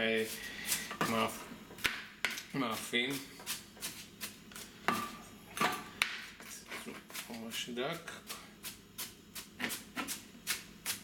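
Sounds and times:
knife chopping on plastic board: 1.8 - 2.4.

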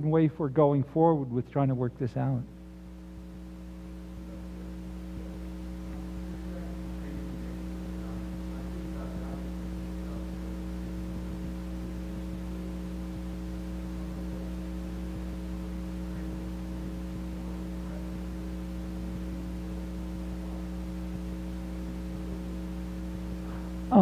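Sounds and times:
electrical mains hum: 0.0 - 24.0.

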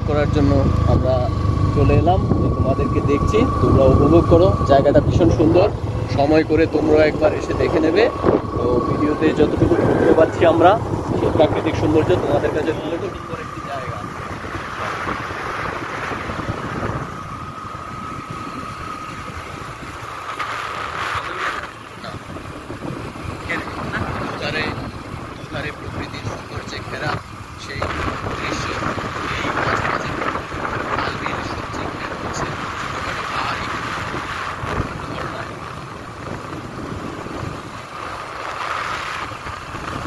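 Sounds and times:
thin steady whine: 0.0 - 36.7
motorbike engine and road noise: 0.0 - 40.0
wind buffeting microphone: 0.0 - 40.0.

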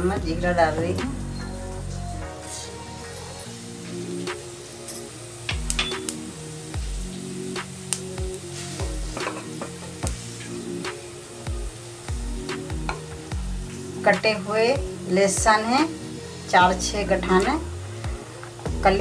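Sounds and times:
background music: 0.0 - 19.0
seeds sizzling in hot oil: 1.4 - 19.0.

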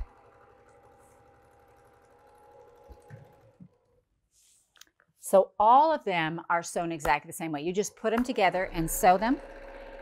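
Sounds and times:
sewing machine stitching: 0.0 - 4.1, 8.2 - 10.0.

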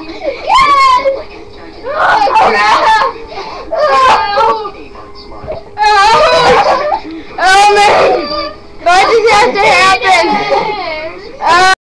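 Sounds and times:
person crying: 0.0 - 1.2, 1.9 - 4.8, 5.8 - 11.8.

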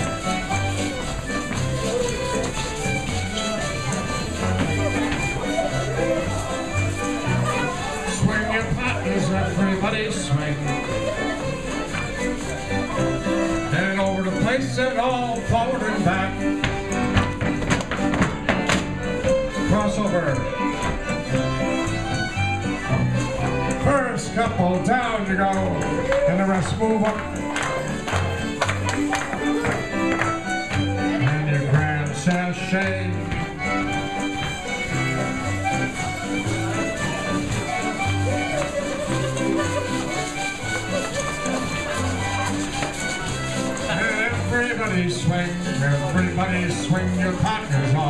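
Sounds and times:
folk dance band playing: 0.0 - 48.0
keyboard and guitar backing: 0.0 - 48.0.

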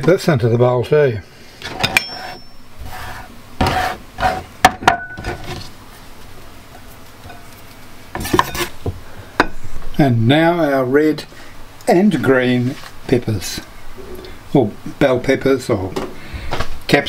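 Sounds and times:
soft rustling and scraping: 12.1 - 13.0.

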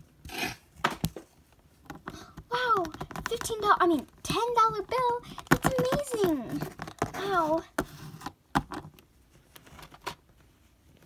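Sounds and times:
plastic toy rustle: 1.8 - 11.0.

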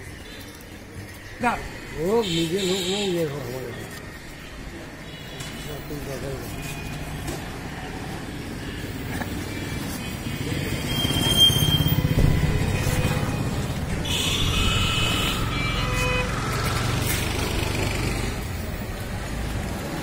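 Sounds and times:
vehicle horn: 9.5 - 16.6.

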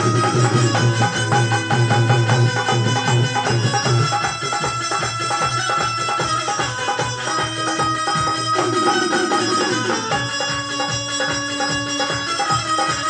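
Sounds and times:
long held melody notes: 8.3 - 10.6.

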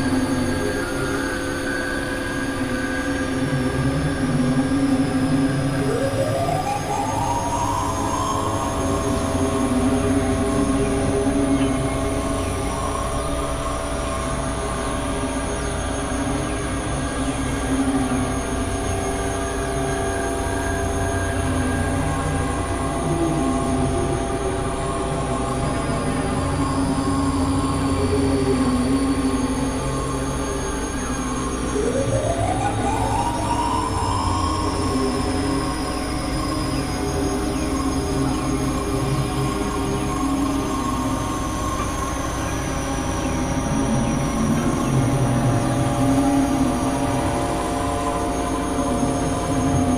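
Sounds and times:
synthesizer drone music: 0.0 - 49.9.

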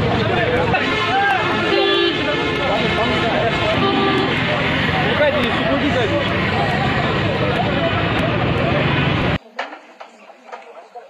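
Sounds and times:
voices talking over one another: 0.0 - 9.4
loud rush of outdoor noise: 0.0 - 11.0.

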